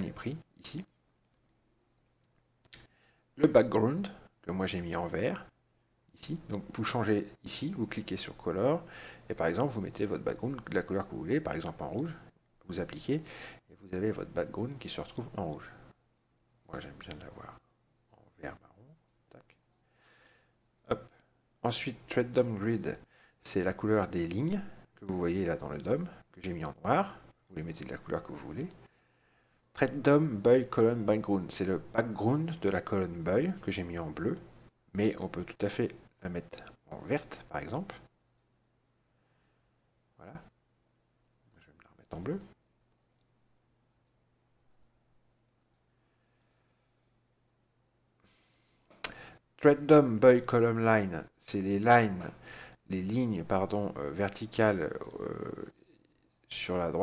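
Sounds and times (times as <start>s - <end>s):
computer mouse clicking: 15.9s - 17.3s, 20.6s - 20.9s, 38.0s - 38.5s, 43.9s - 46.6s.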